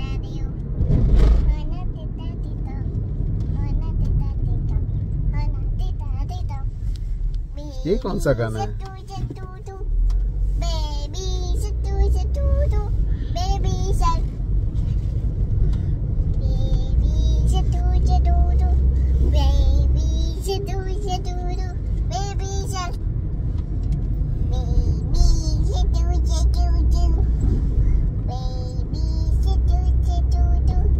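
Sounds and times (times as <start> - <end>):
girl singing: 0.0 - 0.5, 1.4 - 6.8, 8.6 - 9.9, 10.6 - 14.4, 16.3 - 23.0, 24.4 - 27.4, 28.2 - 30.9
car cabin rumble: 0.0 - 30.9.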